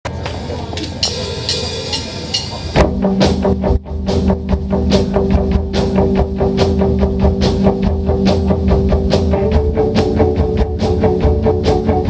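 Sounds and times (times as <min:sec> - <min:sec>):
live rock band: 0:00.9 - 0:12.0
light cymbal strikes: 0:01.0 - 0:02.8.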